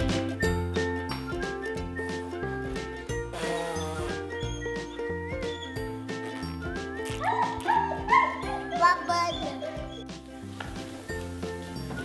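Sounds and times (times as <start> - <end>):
background music: 0.0 - 12.0
dog barking: 7.3 - 8.8.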